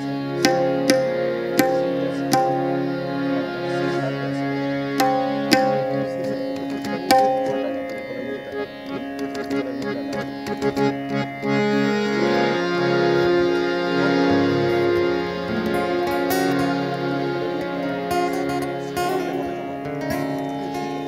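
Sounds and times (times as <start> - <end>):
harmonium chords: 0.0 - 21.0
tabla strokes: 0.4 - 2.9, 5.0 - 8.0.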